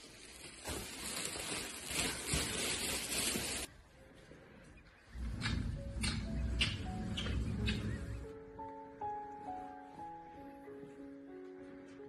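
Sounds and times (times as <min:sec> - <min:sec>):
plastic bags rustling: 0:00.0 - 0:03.7.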